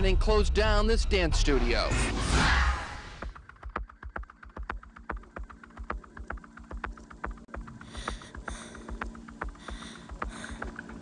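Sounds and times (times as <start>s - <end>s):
rapid clicking and tapping: 3.5s - 11.0s
faint steady hum: 3.7s - 11.0s.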